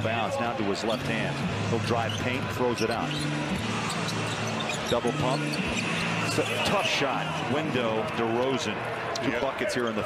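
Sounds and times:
crowd and arena hum: 0:00.0 - 0:10.0
sneakers squeaking on court: 0:01.9 - 0:06.9.

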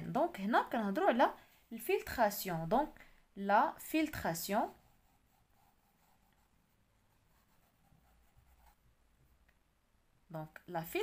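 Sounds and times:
pen scratching on paper: 0:04.6 - 0:08.9.

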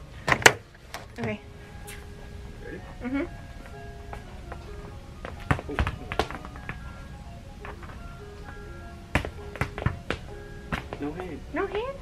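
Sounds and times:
background music: 0:00.0 - 0:12.0
ball bouncing on hard floor: 0:05.2 - 0:06.8, 0:08.5 - 0:11.1.

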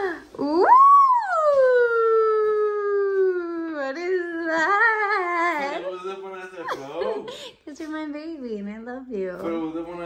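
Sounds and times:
person whooping falsetto cheer: 0:00.4 - 0:03.4.

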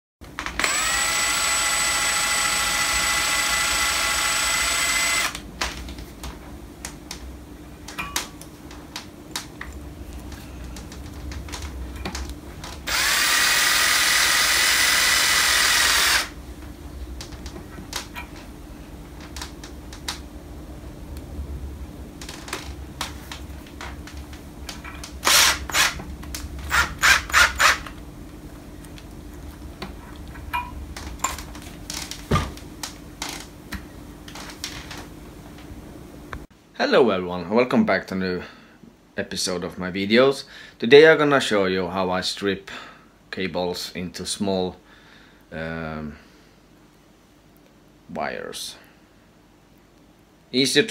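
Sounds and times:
cordless drill whining: 0:00.5 - 0:05.4, 0:12.9 - 0:16.4, 0:25.2 - 0:26.0, 0:26.7 - 0:27.9.

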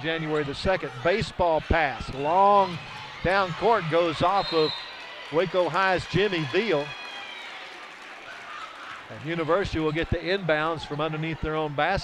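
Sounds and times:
indistinct crowd chatter: 0:00.0 - 0:12.0.

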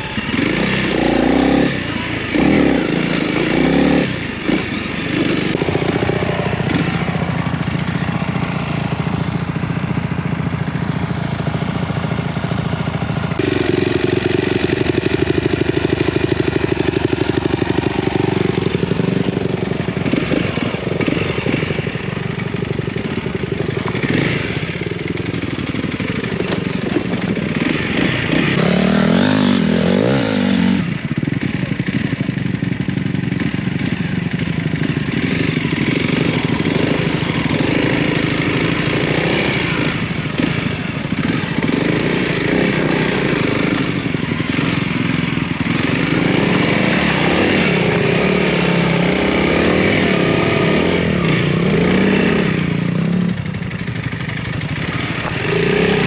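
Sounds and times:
tyres on gravel: 0:00.0 - 0:52.1, 0:53.5 - 0:56.0
motorcycle engine running: 0:00.0 - 0:56.0.

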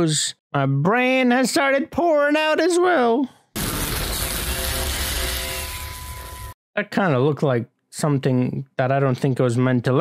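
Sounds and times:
lightning crash: 0:03.6 - 0:06.6.

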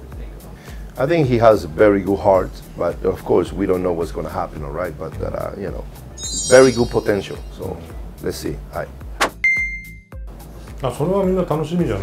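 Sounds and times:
soft background music: 0:00.0 - 0:12.0
bell-like ding: 0:06.2 - 0:07.7, 0:09.4 - 0:10.1.

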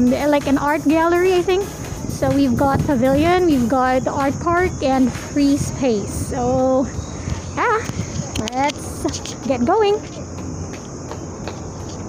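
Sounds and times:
cicadas droning: 0:00.0 - 0:12.0
faint footstep clicks: 0:07.2 - 0:12.0.

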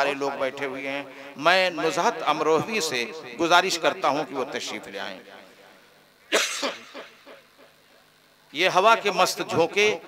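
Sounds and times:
man coughing into a microphone: 0:06.3 - 0:07.4.

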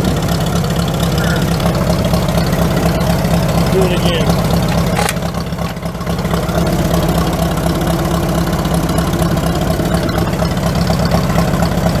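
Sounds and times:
tractor engine idling: 0:00.0 - 0:12.0.

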